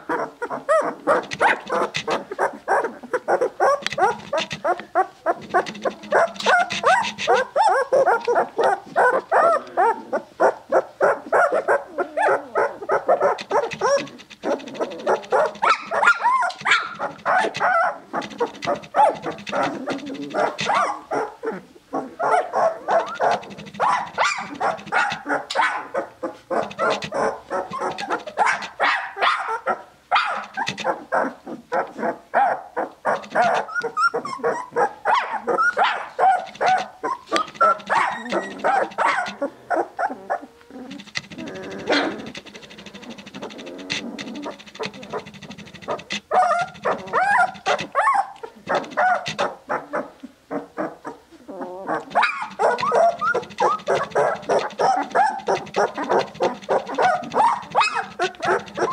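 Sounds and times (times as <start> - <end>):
puppies whining and squealing: 0.0 - 58.9.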